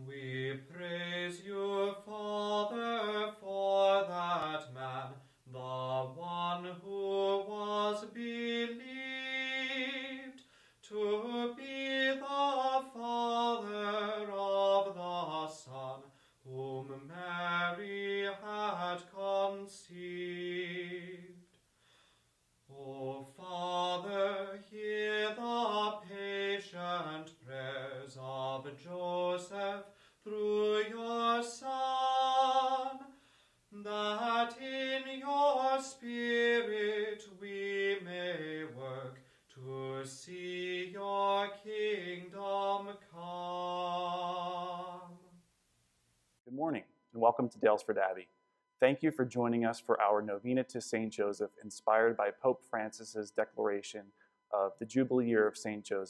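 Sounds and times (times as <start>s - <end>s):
unaccompanied chant: 0.0s - 21.4s, 22.7s - 45.4s
man chanting unaccompanied: 49.0s - 56.0s.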